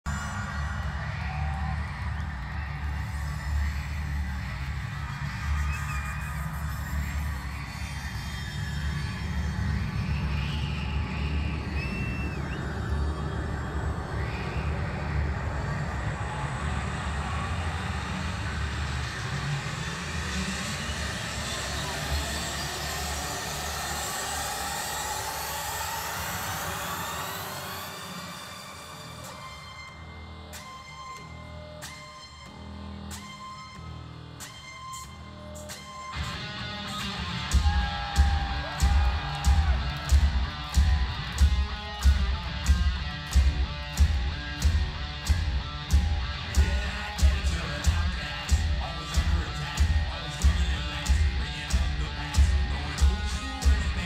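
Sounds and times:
crowd shouting and whooping: 0:00.0 - 0:30.0, 0:35.8 - 0:54.0
rising synth sweep: 0:12.6 - 0:29.9.

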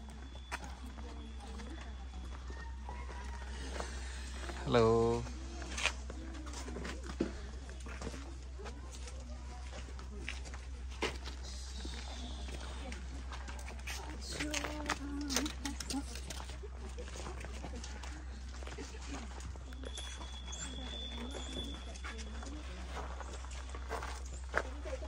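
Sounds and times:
people talking: 0:00.0 - 0:25.0.

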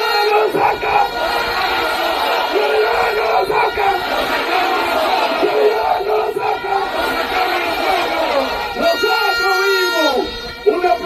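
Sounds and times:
crowd shouting together: 0:00.0 - 0:11.0.

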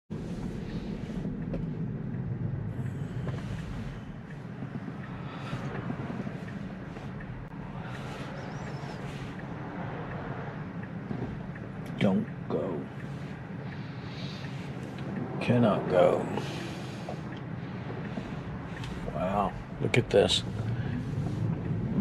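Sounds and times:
road and tyre rumble: 0:00.1 - 0:22.0.

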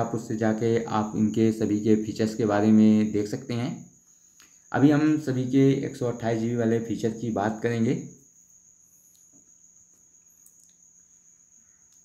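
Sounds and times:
thin high-pitched whine: 0:00.0 - 0:12.0.

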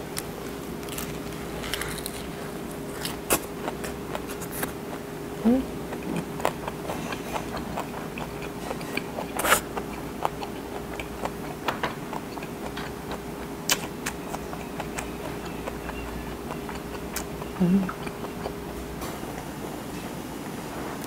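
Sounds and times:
faint steady hum: 0:00.0 - 0:21.0
close chewing crunches: 0:00.8 - 0:05.1, 0:05.9 - 0:19.0.

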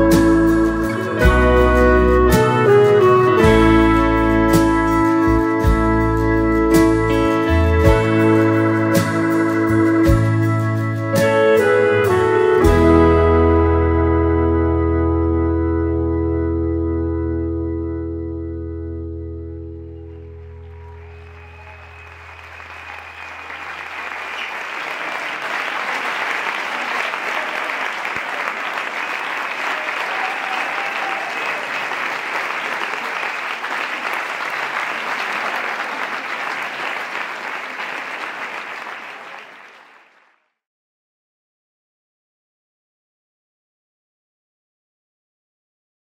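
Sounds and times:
audience applause and cheering: 0:19.9 - 0:40.3.

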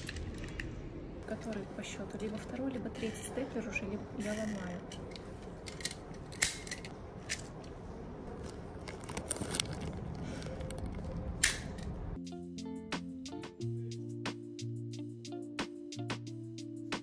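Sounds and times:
steady background hum: 0:00.0 - 0:12.2
background music with guitar: 0:12.2 - 0:17.0.

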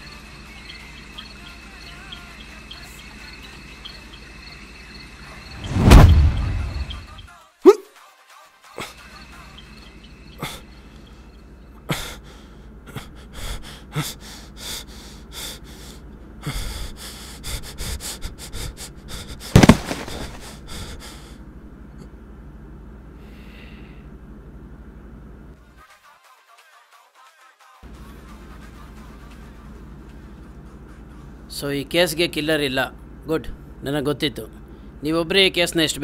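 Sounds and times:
crickets chirping: 0:00.0 - 0:07.3, 0:08.8 - 0:12.8, 0:16.6 - 0:21.3
body falling onto floor: 0:05.6 - 0:06.8, 0:19.6 - 0:20.6
rush of noise with deep boom: 0:05.6 - 0:07.2
man breathing rapidly: 0:11.9 - 0:21.5, 0:23.2 - 0:24.1.

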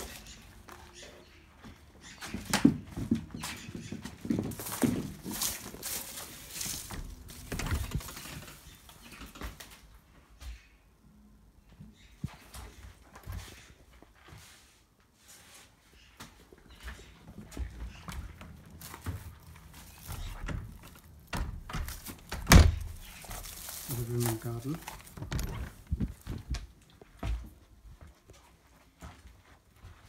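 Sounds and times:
footsteps on paving: 0:01.6 - 0:08.0, 0:23.0 - 0:30.0.

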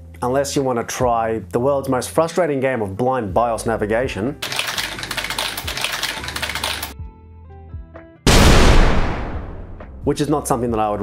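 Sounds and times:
rapid keyboard typing: 0:04.4 - 0:07.0.

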